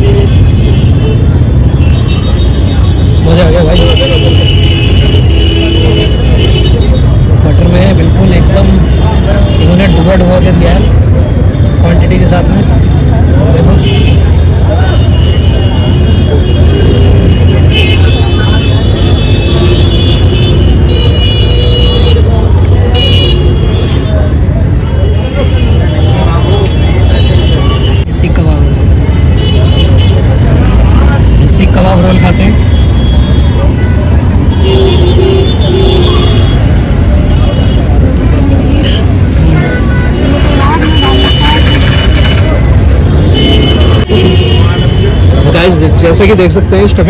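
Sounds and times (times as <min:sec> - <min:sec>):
crowd chatter: 0:00.0 - 0:47.0
traffic rumble: 0:00.0 - 0:47.0.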